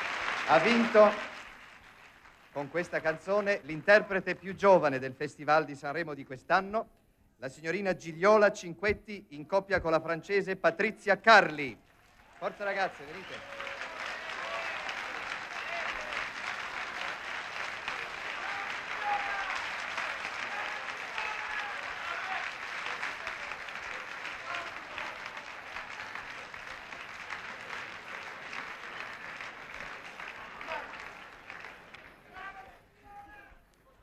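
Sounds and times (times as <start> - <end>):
audience applauding: 0.0 - 4.6, 11.8 - 33.3.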